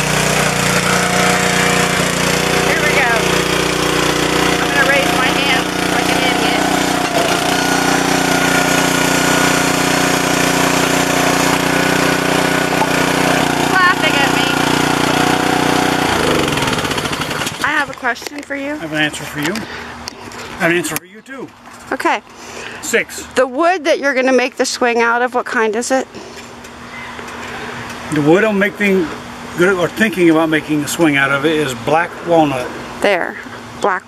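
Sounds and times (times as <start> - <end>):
small petrol engine running: 0.0 - 20.7.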